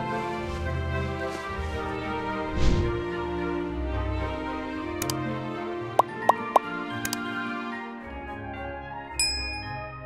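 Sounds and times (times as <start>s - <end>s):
background music: 0.0s - 10.0s
click sound effect pops: 6.0s - 7.2s.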